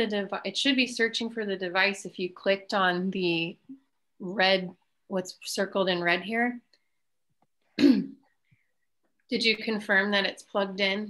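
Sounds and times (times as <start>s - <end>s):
person clearing their throat: 7.8s - 8.3s.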